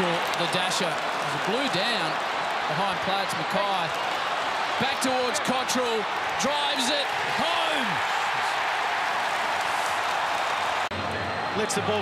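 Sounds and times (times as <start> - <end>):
stadium crowd cheering and applauding: 0.0 - 12.0.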